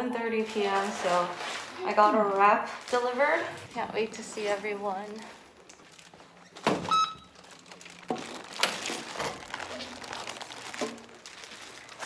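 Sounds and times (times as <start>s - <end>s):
plastic bag rustling: 0.2s - 12.0s
short electronic beep: 6.9s - 7.3s.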